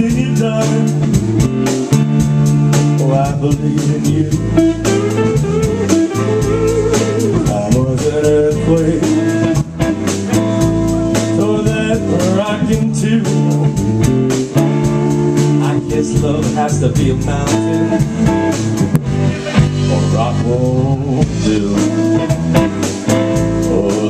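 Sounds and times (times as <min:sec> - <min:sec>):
live blues band playing: 0:00.0 - 0:24.0.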